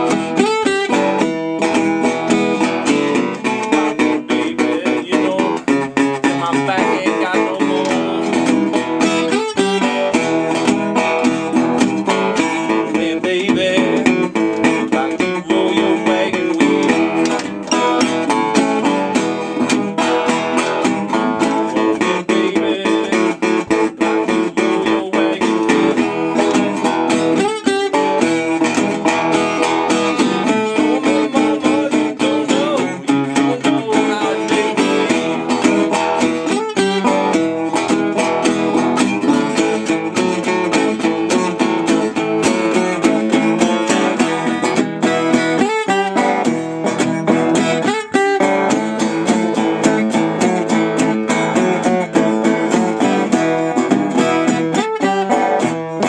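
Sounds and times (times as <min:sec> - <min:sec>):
resonator guitar fingerstyle blues: 0:00.0 - 0:56.0.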